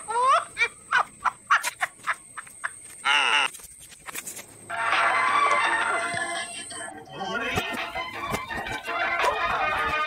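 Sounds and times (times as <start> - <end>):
frogs calling: 0.0 - 8.2.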